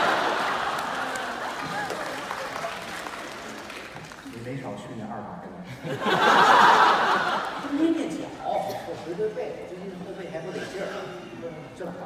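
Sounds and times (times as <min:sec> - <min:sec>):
audience applause: 0:00.0 - 0:04.4
crowd noise: 0:00.0 - 0:12.0.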